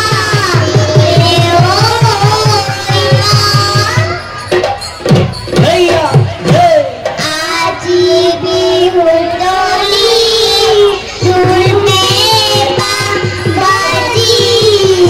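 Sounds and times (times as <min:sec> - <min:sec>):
girls singing folk song: 0:00.0 - 0:04.2, 0:07.2 - 0:15.0
steady drum beat: 0:00.0 - 0:08.0, 0:10.6 - 0:15.0.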